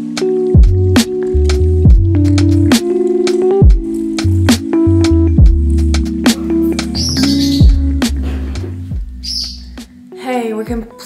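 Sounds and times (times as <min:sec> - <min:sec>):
background music with beat: 0:00.0 - 0:11.0
bird chirping: 0:06.4 - 0:09.8.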